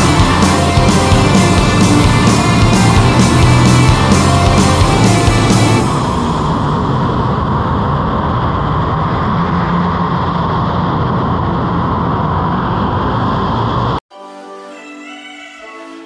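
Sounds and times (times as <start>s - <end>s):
rumbling indoor go-kart track din: 0.0s - 14.0s.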